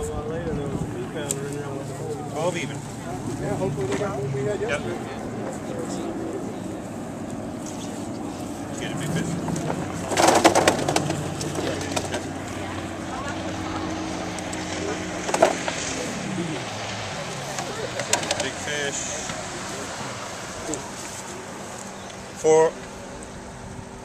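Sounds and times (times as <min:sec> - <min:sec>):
murmured voices: 0:00.0 - 0:24.0
outboard boat motor running: 0:00.0 - 0:24.0
rattling clatter: 0:09.2 - 0:12.4.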